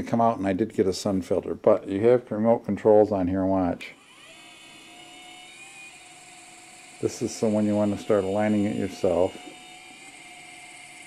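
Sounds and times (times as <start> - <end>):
electric motor whirring: 3.8 - 11.0.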